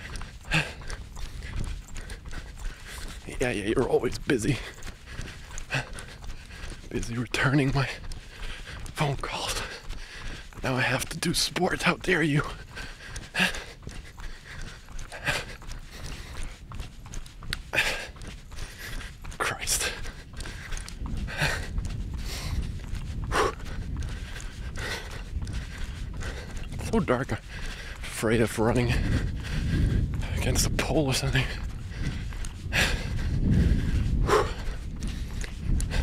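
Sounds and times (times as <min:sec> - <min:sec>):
jogging footsteps: 0:00.0 - 0:36.0
man breathing heavily: 0:00.0 - 0:36.0.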